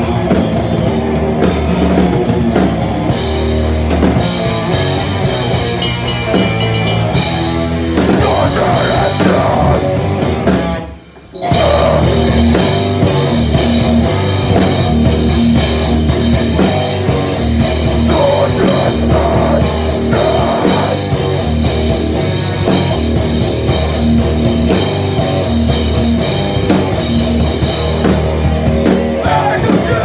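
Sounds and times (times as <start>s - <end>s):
distorted electric guitar: 0.0s - 30.0s
pounding drum kit: 0.0s - 30.0s
cymbals: 4.5s - 8.2s.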